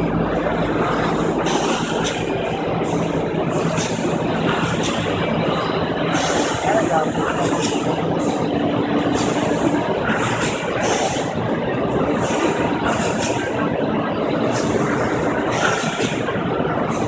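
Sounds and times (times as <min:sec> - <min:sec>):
plastics machinery running: 0:00.0 - 0:17.0.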